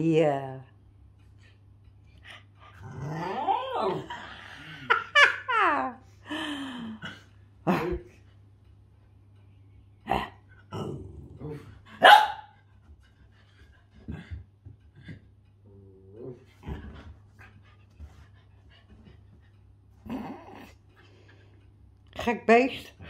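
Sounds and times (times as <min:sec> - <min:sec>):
low steady hum: 0:00.0 - 0:23.0
dogs growling: 0:02.6 - 0:05.2, 0:10.0 - 0:12.0, 0:13.9 - 0:19.2, 0:19.9 - 0:21.5
dogs barking: 0:12.0 - 0:12.6.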